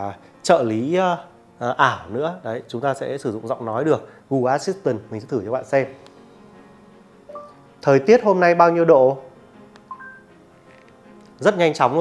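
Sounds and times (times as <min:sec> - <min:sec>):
two-note rising electronic chime: 0:07.3 - 0:07.6.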